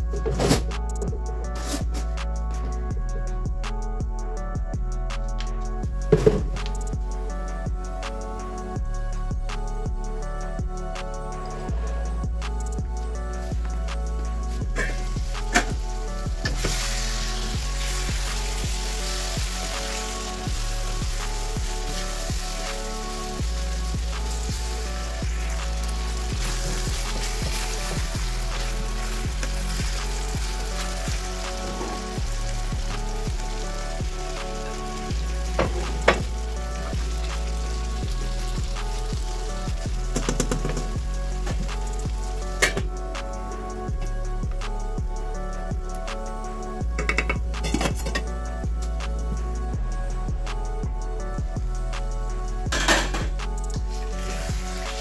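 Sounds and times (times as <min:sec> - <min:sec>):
background music: 0:00.0 - 0:55.0
chicken and onions sizzling in pan: 0:14.5 - 0:42.8, 0:53.9 - 0:55.0.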